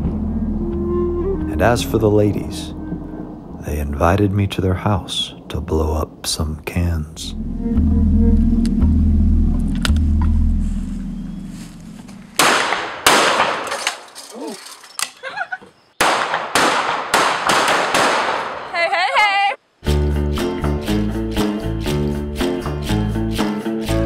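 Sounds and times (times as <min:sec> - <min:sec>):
handgun shots ringing: 0:12.4 - 0:14.2, 0:16.0 - 0:18.6
woman's voice: 0:18.7 - 0:19.6.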